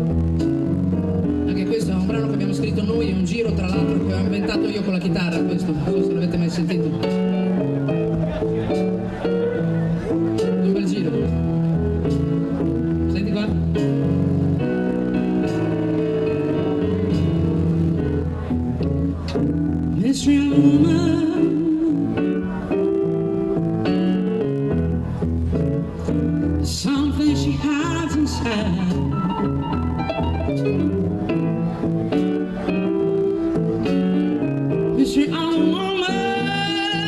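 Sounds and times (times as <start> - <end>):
live band playing: 0.0 - 37.0.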